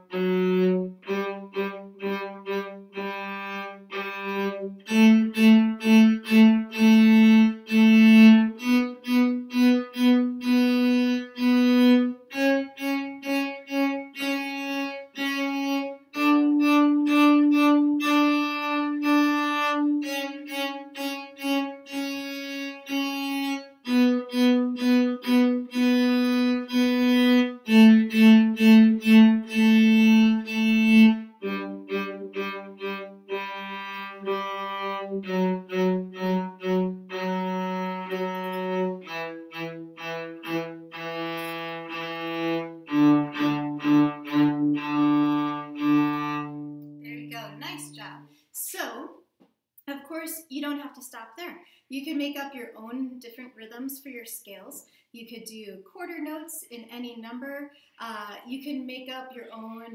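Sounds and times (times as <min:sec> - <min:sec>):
solo cello playing a scale: 0:00.0 - 0:48.0.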